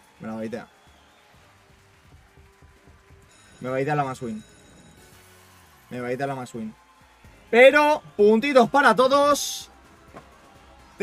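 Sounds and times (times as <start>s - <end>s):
slot game sound effects: 3.3s - 5.4s
slot game music: 3.3s - 6.2s.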